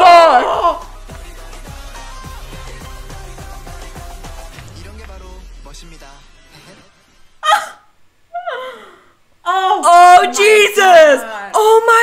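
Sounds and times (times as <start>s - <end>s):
woman gasping: 7.4s - 9.2s.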